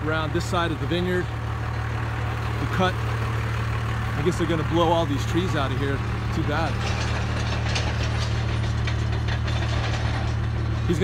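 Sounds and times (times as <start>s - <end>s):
mechanical rattling and ticking: 0.7s - 11.0s.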